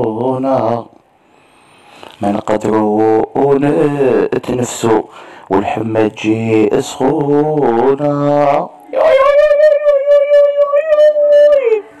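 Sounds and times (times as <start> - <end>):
long high howling call: 8.9 - 12.0.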